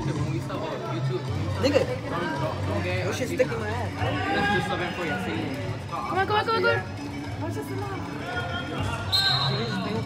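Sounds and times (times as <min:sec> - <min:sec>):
spectators' voices echoing: 0:00.0 - 0:10.0
referee whistle blast: 0:09.1 - 0:09.9.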